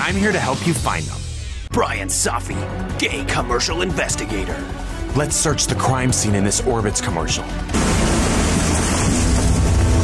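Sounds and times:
hovercraft fan roaring: 7.7 - 10.0
low engine hum: 7.8 - 10.0.

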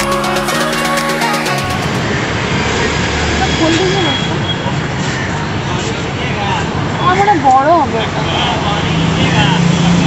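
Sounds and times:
background music: 0.0 - 2.1
road traffic rumble: 2.0 - 10.0.

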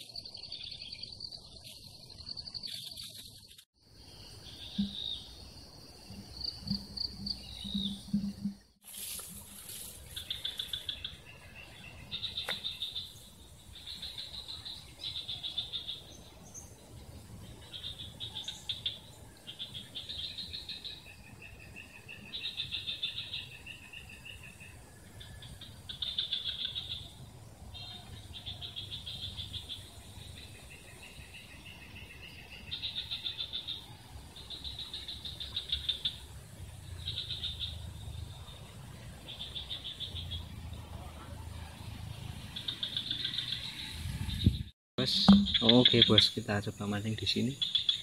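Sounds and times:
high pulsing trills: 45.0 - 46.5.

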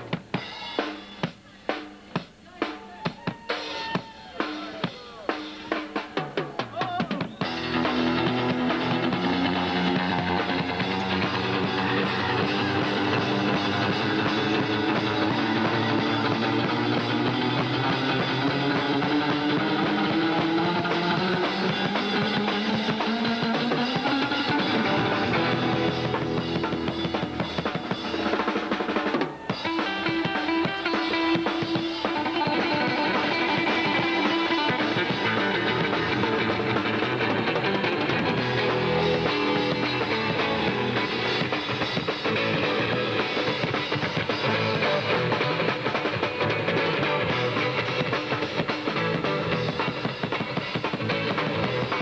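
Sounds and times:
drum kit: 0.0 - 52.0
live rock band: 0.0 - 52.0
electric guitar playing lead: 7.4 - 52.0.

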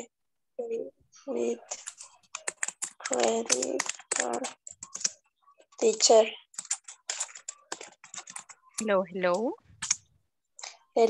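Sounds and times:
keyboard typing: 1.4 - 10.8
person talking: 8.8 - 9.6.

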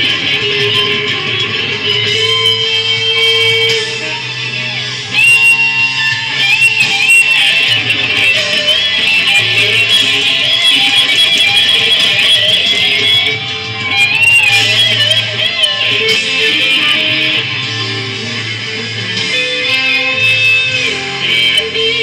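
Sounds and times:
electric guitar lead with bends: 0.0 - 22.0.

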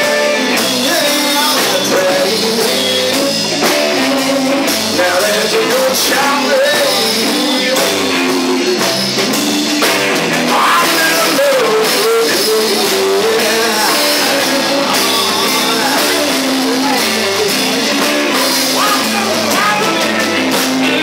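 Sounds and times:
drum kit: 0.0 - 21.0
electric guitar: 0.0 - 21.0.

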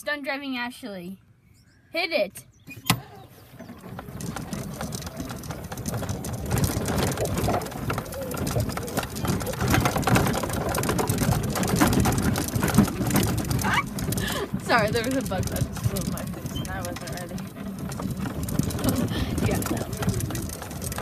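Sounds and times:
golf cart rattling and clattering: 2.9 - 21.0
wind noise: 3.6 - 21.0.

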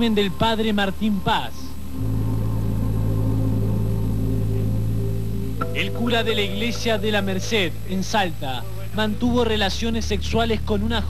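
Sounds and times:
low droning music chord: 0.0 - 11.0.

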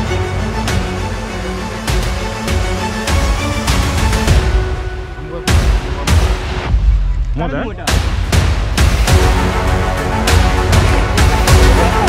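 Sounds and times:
dramatic intro music: 0.0 - 12.0.

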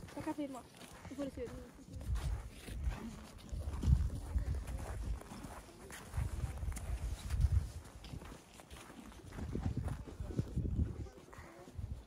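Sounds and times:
footsteps crunching on snow: 0.0 - 11.6
wind rumbling on microphone: 1.8 - 12.0.

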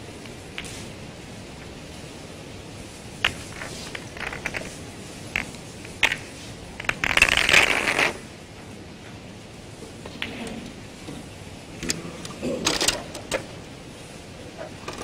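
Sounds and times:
snooker balls clicking: 0.2 - 0.9, 3.2 - 9.2, 10.0 - 13.6.

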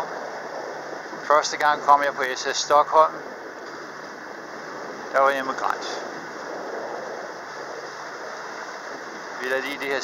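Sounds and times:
water rushing around boat: 0.0 - 10.0
wind rushing: 0.0 - 10.0.

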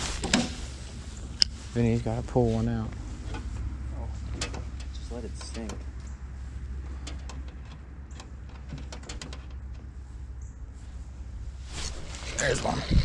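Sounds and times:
low steady rumble: 0.0 - 13.0.

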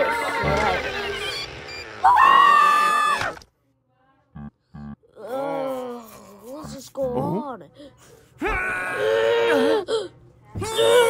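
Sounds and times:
cartoon character screaming: 2.0 - 3.4.

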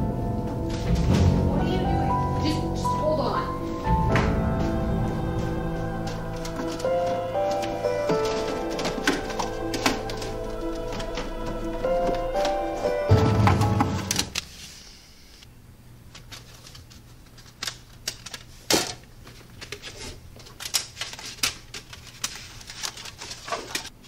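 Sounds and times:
background music with held notes: 0.0 - 14.4.

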